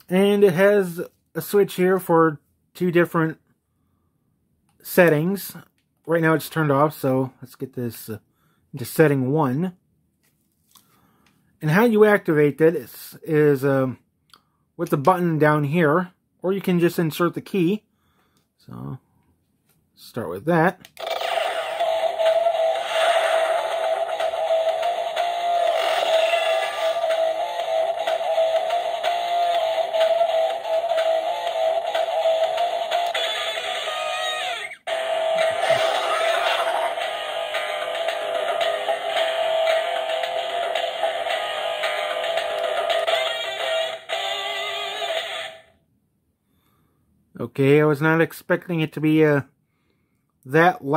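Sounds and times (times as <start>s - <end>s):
synthetic voice from toy speaker: 21.0s - 45.7s
toy electronic music and sound effects: 21.0s - 45.7s.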